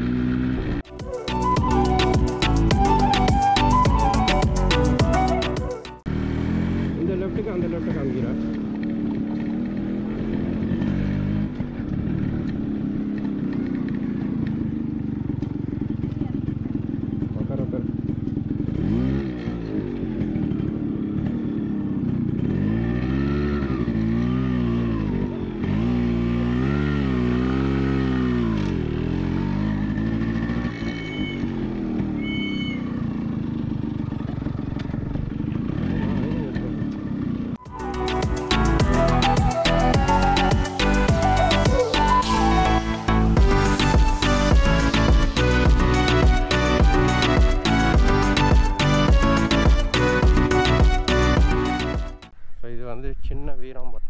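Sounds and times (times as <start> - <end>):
motorcycle engine revving: 0.0 - 52.5.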